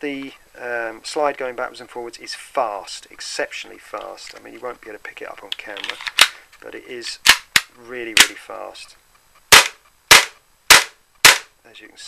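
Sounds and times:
airsoft pistol shots: 9.5s - 11.5s.

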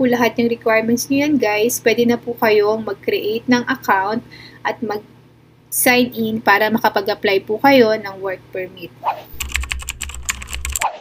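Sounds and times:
rapid keyboard typing: 9.3s - 11.0s.

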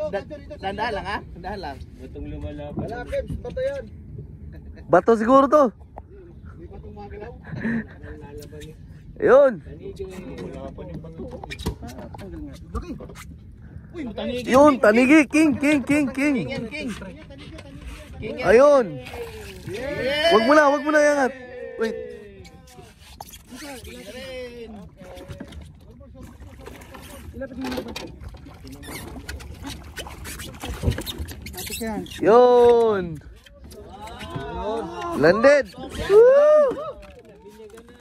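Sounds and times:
knocks and thump on boat: 24.8s - 34.8s.

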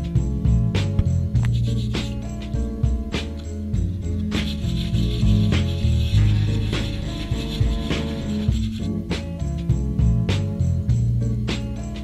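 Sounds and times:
background music with beat: 0.0s - 12.0s
sandpaper rubbing: 1.5s - 2.4s, 4.2s - 9.0s.

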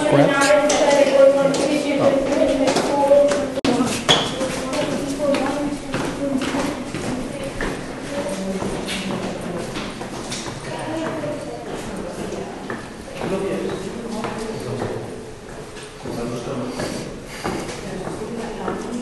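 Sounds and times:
footsteps on stone stairs: 0.3s - 19.0s.

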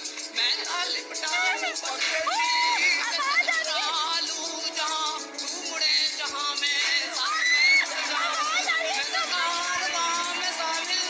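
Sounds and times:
high voices calling out: 0.9s - 4.2s, 6.7s - 11.0s
crowd cheering and shouting: 1.2s - 4.1s, 6.6s - 11.0s.

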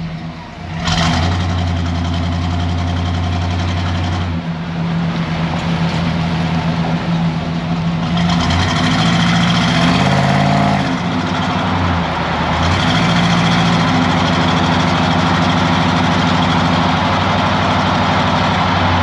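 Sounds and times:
truck engine and exhaust: 0.0s - 19.0s
tyre and road noise: 0.0s - 19.0s.

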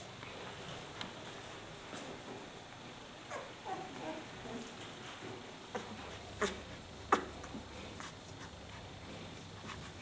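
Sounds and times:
puppy whimpering: 3.3s - 4.7s.

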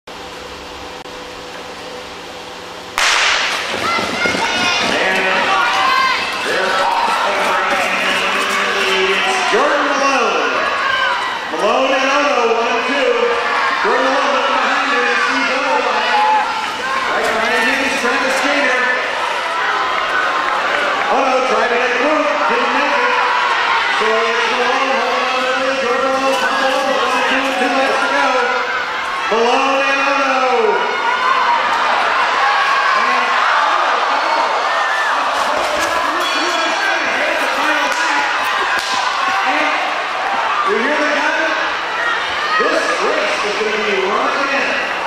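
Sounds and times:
venue background noise: 0.1s - 45.0s
starting gun crack: 3.0s - 5.4s
crowd cheering and shouting: 3.0s - 45.0s
man talking: 35.5s - 38.6s.

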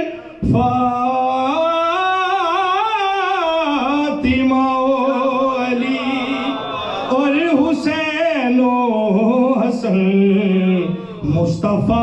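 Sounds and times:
man singing with vibrato: 0.0s - 12.0s.

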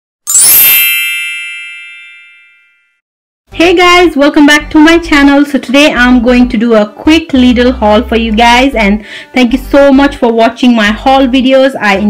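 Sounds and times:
bright chime ringing: 0.3s - 3.0s.

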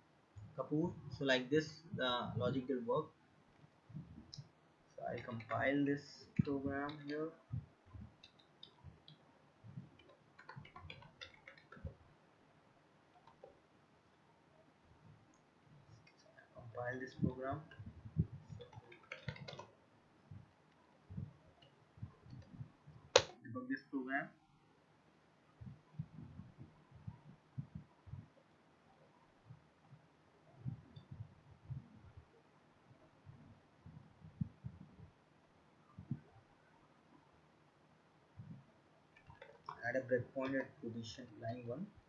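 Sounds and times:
computer keyboard clicking: 8.2s - 9.2s, 9.9s - 12.0s, 18.4s - 19.8s
faint low thumps: 25.6s - 28.4s.

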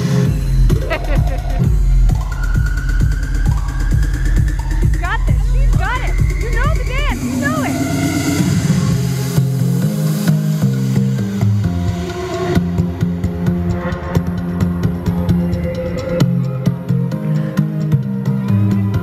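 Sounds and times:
dance music through sound system: 0.0s - 19.0s.

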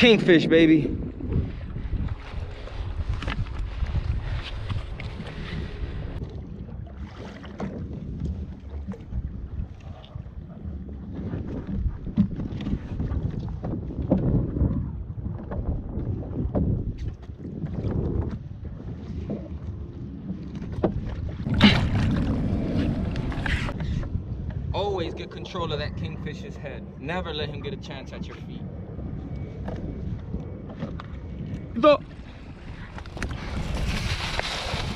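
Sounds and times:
wind buffeting microphone: 0.0s - 34.9s
water sloshing against kayak hull: 1.1s - 34.9s.

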